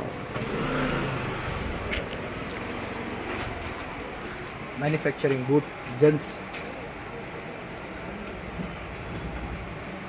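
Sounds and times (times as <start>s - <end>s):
vehicle engine running: 0.0s - 4.3s
street hum: 0.0s - 10.0s.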